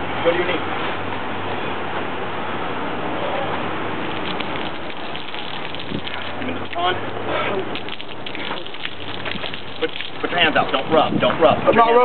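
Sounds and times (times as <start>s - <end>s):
hose water splashing on concrete: 4.0s - 11.4s.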